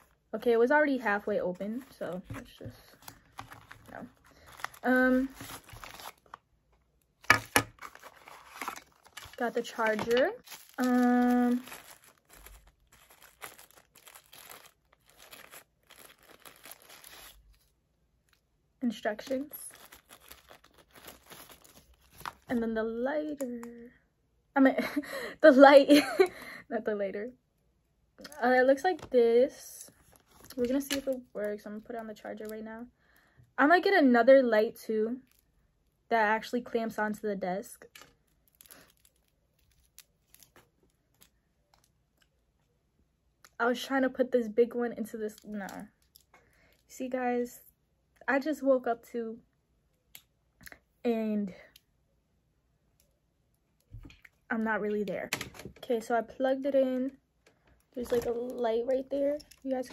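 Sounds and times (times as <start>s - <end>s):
packaging crinkling and rustling: 1.6s - 22.7s, 29.9s - 32.6s, 37.8s - 42.3s
faint clicks of handled cable: 49.9s - 50.8s, 59.4s - 59.9s.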